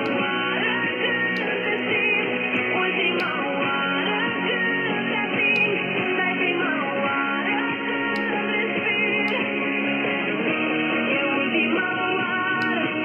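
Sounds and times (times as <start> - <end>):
guitar music on radio: 0.0 - 13.0.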